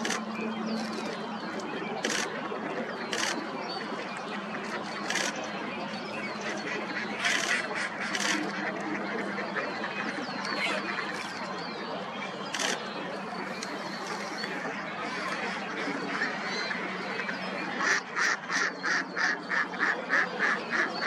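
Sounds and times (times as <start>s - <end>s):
ducks quacking: 0.0s - 21.0s.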